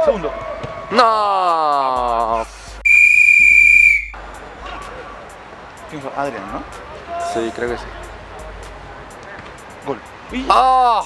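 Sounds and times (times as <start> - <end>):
referee whistle blast: 2.8 - 4.2.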